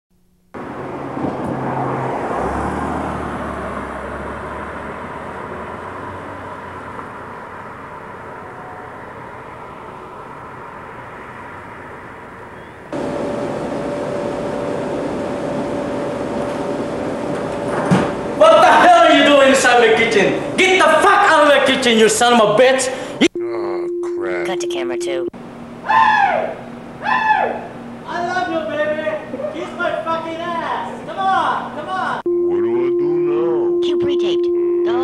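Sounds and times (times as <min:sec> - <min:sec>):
steady hum: 0:22.9 - 0:29.5, 0:30.6 - 0:35.0
low held hums: 0:23.2 - 0:28.1, 0:32.3 - 0:35.0
faint held tone: 0:23.3 - 0:25.3, 0:32.3 - 0:35.0.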